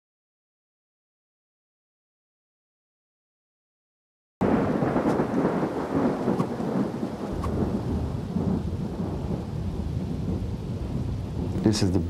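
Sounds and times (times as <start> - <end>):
rain: 4.4 - 12.0
thunder rumbling: 4.4 - 12.0.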